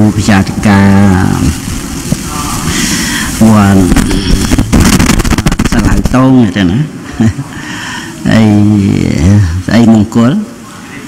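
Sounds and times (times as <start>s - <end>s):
man speaking into a microphone: 0.0s - 1.6s, 2.2s - 4.8s, 5.5s - 11.0s
faint voices: 0.0s - 4.8s, 5.6s - 11.0s.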